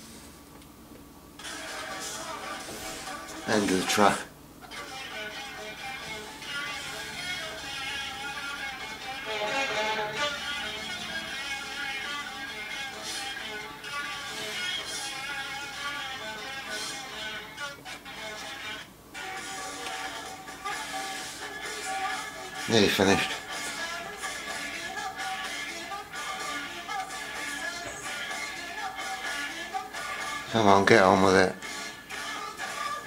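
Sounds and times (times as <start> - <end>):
pop music with guitar: 1.4 - 33.0.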